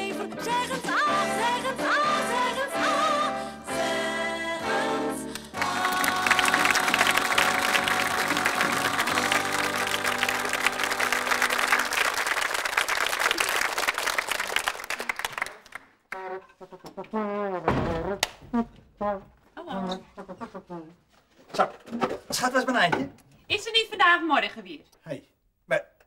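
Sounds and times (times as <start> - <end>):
sung theme song chord: 1.0 - 11.8
audience applauding: 5.4 - 16.1.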